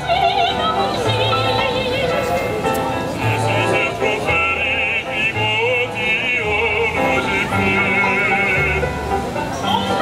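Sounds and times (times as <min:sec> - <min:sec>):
piano accompaniment: 0:00.0 - 0:10.0
operatic singing with vibrato: 0:03.2 - 0:10.0.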